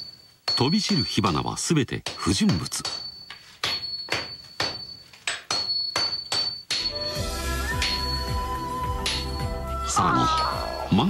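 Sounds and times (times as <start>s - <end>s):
hammer striking steel on anvil: 2.0s - 8.4s, 9.0s - 9.4s
music: 6.8s - 11.0s.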